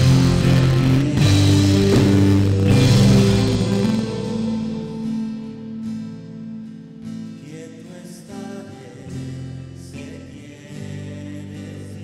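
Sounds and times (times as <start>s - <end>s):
live band with drums: 0.0s - 5.6s
sustained guitar chords: 0.0s - 12.0s.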